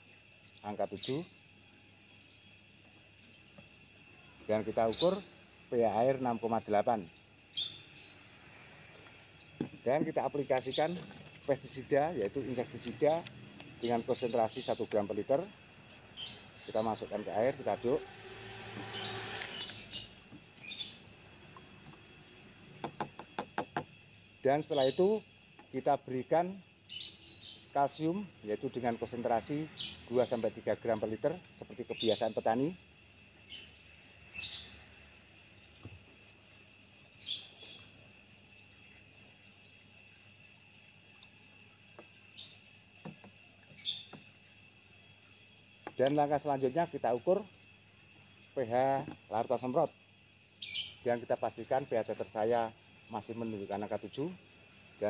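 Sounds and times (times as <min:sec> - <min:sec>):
small bird chirping: 0:00.4 - 0:06.4, 0:07.0 - 0:12.2, 0:12.9 - 0:15.1, 0:15.9 - 0:17.5, 0:18.7 - 0:22.1, 0:24.6 - 0:25.7, 0:26.8 - 0:27.8, 0:29.7 - 0:30.6, 0:33.2 - 0:36.0, 0:36.7 - 0:46.2, 0:50.5 - 0:51.1
plastic spoon tapping in tub: 0:22.8 - 0:23.9.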